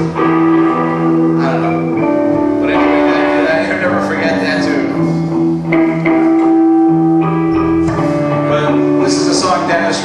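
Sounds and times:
electric guitar: 0.0 - 10.0
live band playing held notes: 0.0 - 10.0.

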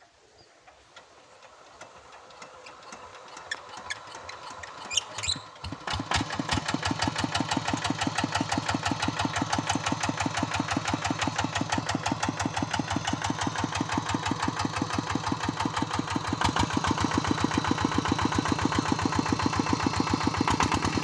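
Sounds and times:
diesel engine idling: 1.0 - 21.0.

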